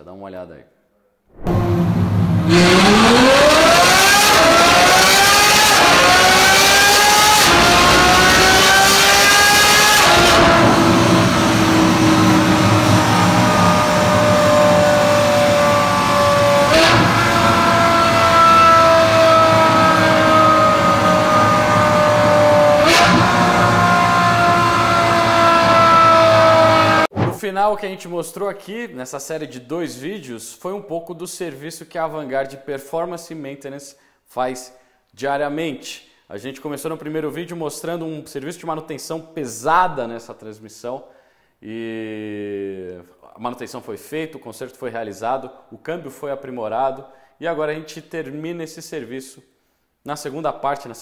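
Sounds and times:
engine revving at full throttle: 1.5 - 27.1.

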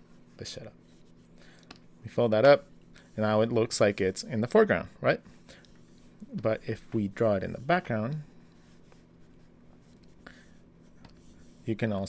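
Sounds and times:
stylus scratching on tablet: 0.0 - 1.2, 1.9 - 4.6, 5.8 - 11.9
low steady hum: 0.0 - 12.0.

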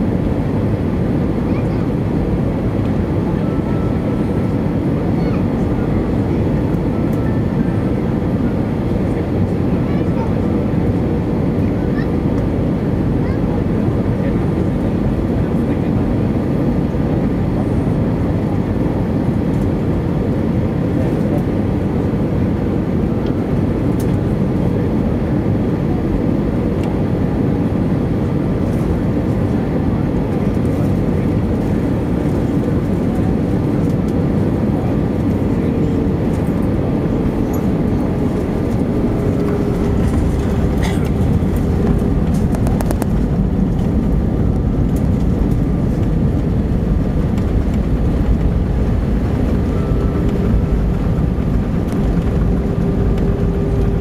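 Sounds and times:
airplane engine and airflow noise: 0.0 - 54.0.

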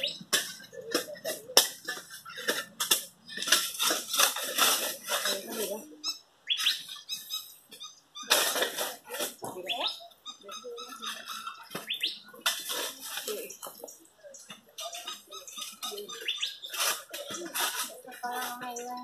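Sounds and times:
shovels and pick digging stony soil: 0.0 - 6.0, 8.2 - 10.0, 10.9 - 19.0.

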